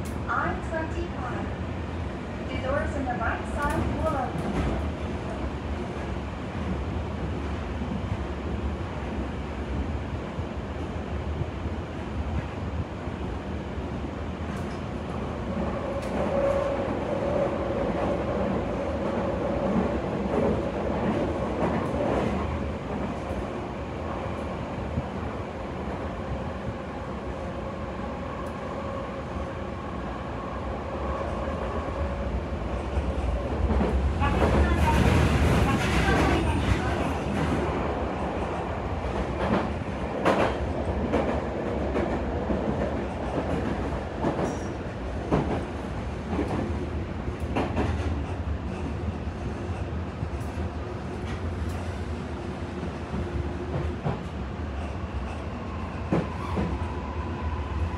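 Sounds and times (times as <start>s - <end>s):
steady train whine: 0.0s - 57.9s
train wheels rolling on rails: 14.4s - 30.1s, 31.1s - 57.9s.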